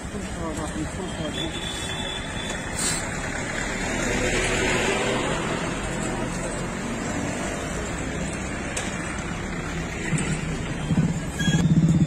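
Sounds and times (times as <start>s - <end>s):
street traffic: 0.0s - 12.0s
brief high hiss: 2.8s - 3.1s.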